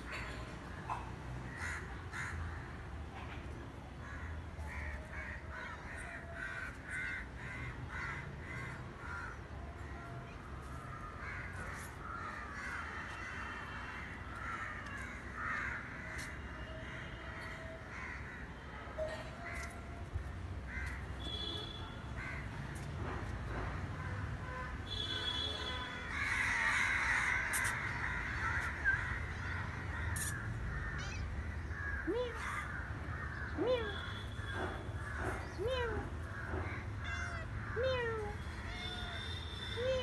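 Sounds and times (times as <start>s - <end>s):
crows cawing: 1.5s - 2.7s, 4.0s - 9.4s, 11.0s - 18.5s, 20.7s - 21.3s, 22.2s - 22.6s, 26.0s - 34.4s, 36.3s - 37.9s.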